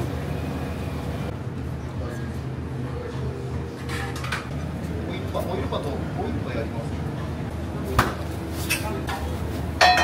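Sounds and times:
metal pans and utensils clattering: 0:03.8 - 0:04.6, 0:08.5 - 0:10.0.

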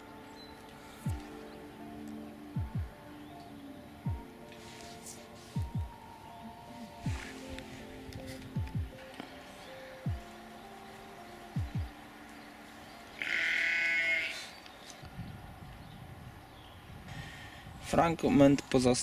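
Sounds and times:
quiet background music: 0:00.0 - 0:19.0
sheep bleating: 0:13.2 - 0:14.5.

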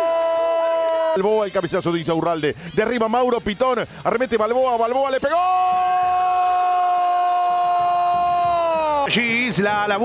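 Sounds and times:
man shouting long goal cry: 0:00.0 - 0:01.4, 0:05.2 - 0:09.1.

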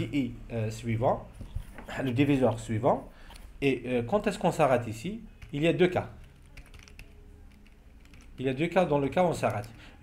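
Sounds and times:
computer keyboard keys clicking: 0:05.4 - 0:05.6, 0:06.2 - 0:08.6, 0:09.4 - 0:09.8.

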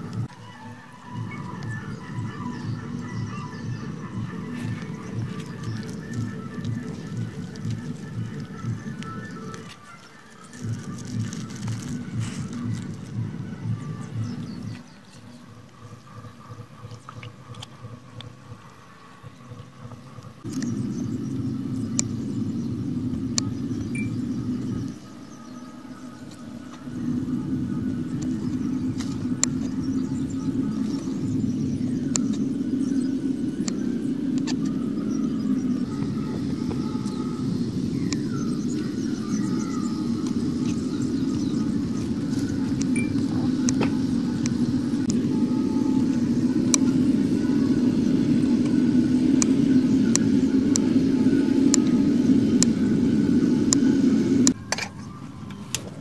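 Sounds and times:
loud steady low rumble: 0:00.0 - 0:54.6
faint sharp clicks: 0:21.9 - 0:22.2.

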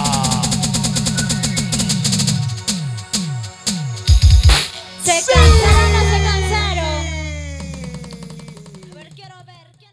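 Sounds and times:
note sliding downward: 0:05.3 - 0:08.6
band closing chord: 0:05.4 - 0:08.6
low held bass: 0:05.4 - 0:08.7.

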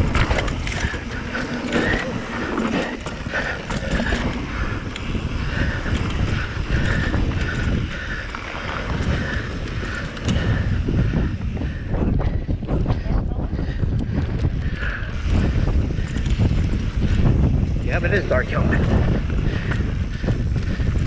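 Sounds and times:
bike rattling and knocking: 0:00.0 - 0:21.0
knobby tyres rumbling on dirt: 0:00.0 - 0:21.0
wind buffeting microphone: 0:00.0 - 0:21.0.

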